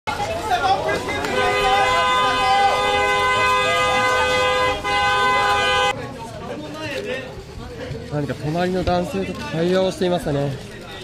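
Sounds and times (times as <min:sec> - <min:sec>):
two-tone car horn blast: 0:01.3 - 0:05.9.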